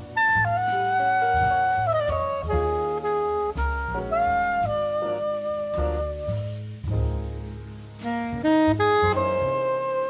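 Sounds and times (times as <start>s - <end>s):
saxophone melody: 0.0s - 6.6s, 8.0s - 10.0s
bass line: 0.0s - 10.0s.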